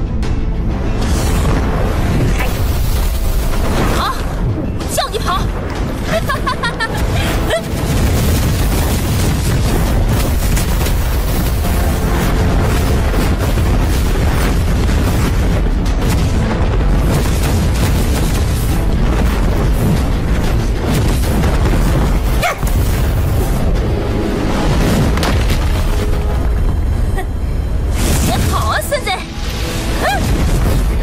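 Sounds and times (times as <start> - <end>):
film battle music: 0.0 - 31.0
booms explosions and impacts: 0.6 - 31.0.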